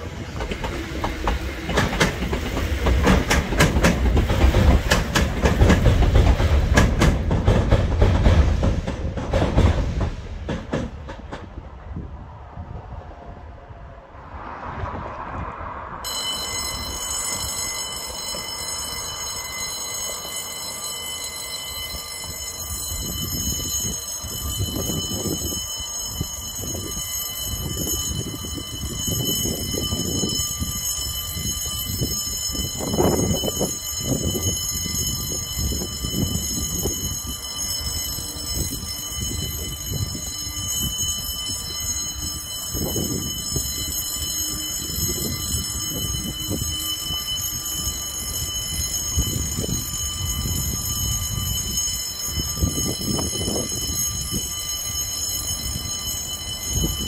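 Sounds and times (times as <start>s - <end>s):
high-pitched warning alarm tone: 16.0s - 57.0s.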